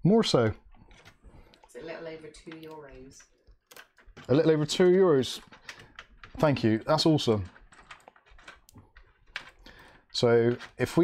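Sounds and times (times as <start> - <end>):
hands clicking and tapping cables: 2.4 - 11.0.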